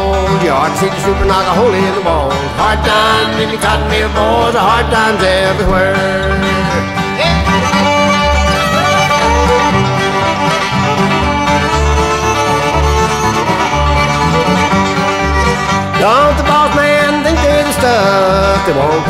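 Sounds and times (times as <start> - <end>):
banjo: 0.0 - 19.0
bass beat: 0.0 - 19.0
fiddle melody: 0.0 - 19.0
guitars: 0.0 - 19.0.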